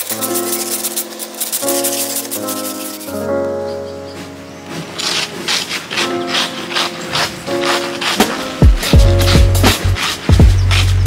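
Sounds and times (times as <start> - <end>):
ice scraper rasping over ice: 0.0 - 3.2, 4.9 - 11.0
background music: 0.0 - 11.0.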